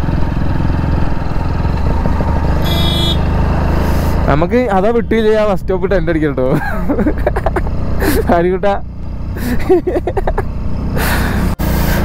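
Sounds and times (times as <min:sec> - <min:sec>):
motorcycle engine running: 0:00.0 - 0:12.0
road and wind rumble: 0:00.0 - 0:12.0.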